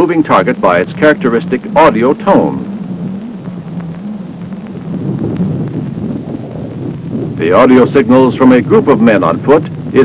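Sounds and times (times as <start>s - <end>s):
rough rumble: 0.0s - 10.0s
wavering radar hum: 0.0s - 10.0s.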